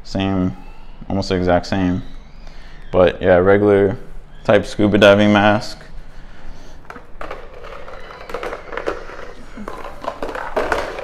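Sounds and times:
plastic packaging rustling: 0:06.9 - 0:11.0.

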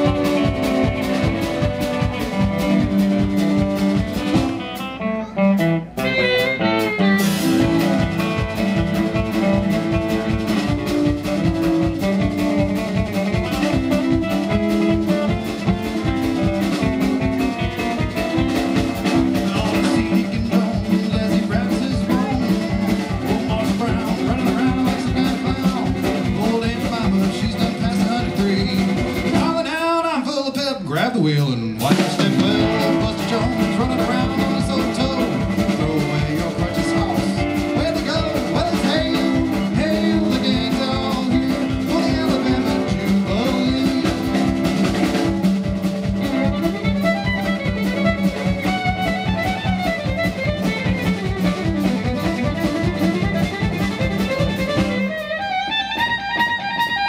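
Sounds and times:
fiddle: 0:00.0 - 0:29.8, 0:31.8 - 0:57.0
acoustic guitar: 0:00.0 - 0:57.0
drum kit: 0:00.0 - 0:57.0.

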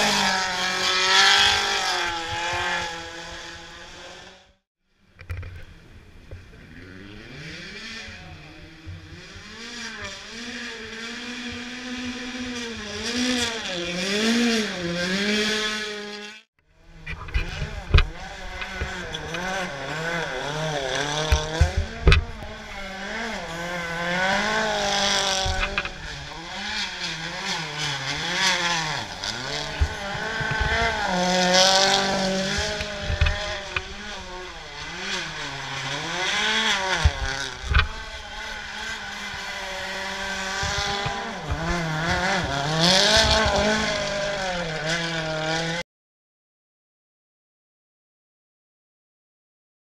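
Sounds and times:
rally car engines revving: 0:00.0 - 0:45.8.

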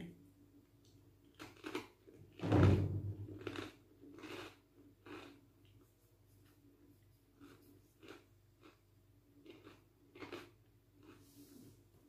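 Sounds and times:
cracker crunching: 0:01.3 - 0:02.4, 0:03.2 - 0:05.4, 0:07.4 - 0:11.2.

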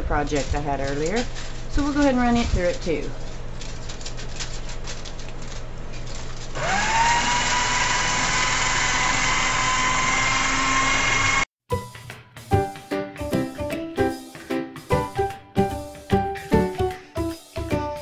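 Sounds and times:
foil crackling as it is cut: 0:00.0 - 0:08.1
paper shredder running: 0:05.9 - 0:11.5
motor whine: 0:06.5 - 0:11.5
music: 0:11.7 - 0:18.0.

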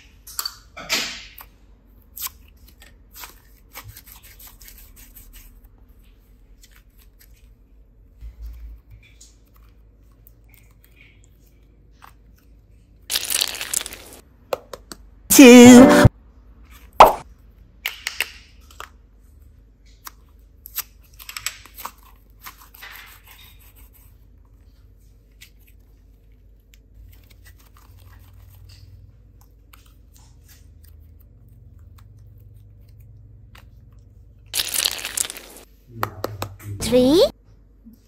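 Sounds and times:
small clicks and crinkling: 0:08.2 - 0:14.2, 0:17.9 - 0:35.7.

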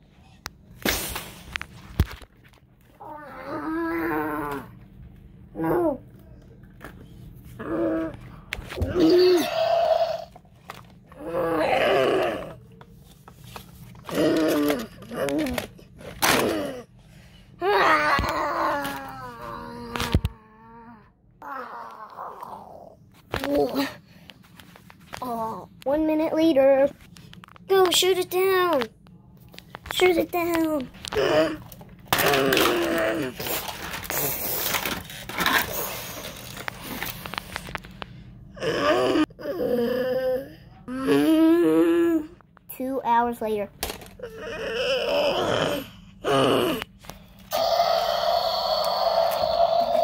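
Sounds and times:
child roaring like dinosaur: 0:03.0 - 0:04.8, 0:05.5 - 0:06.0, 0:07.6 - 0:10.4, 0:11.1 - 0:12.6, 0:14.1 - 0:16.9, 0:17.6 - 0:23.0, 0:31.1 - 0:33.6, 0:38.6 - 0:42.4, 0:44.2 - 0:46.9, 0:47.5 - 0:50.0
plastic toys clattering: 0:13.4 - 0:16.8, 0:29.6 - 0:38.0, 0:43.8 - 0:44.2.

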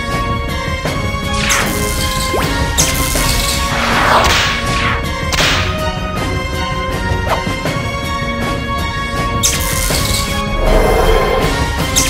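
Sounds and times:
background music: 0:00.0 - 0:12.0
swooshing energy blasts: 0:03.6 - 0:05.1.

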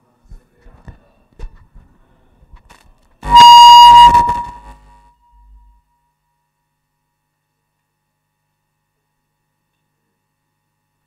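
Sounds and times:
microphone feedback squeal: 0:03.2 - 0:05.7.

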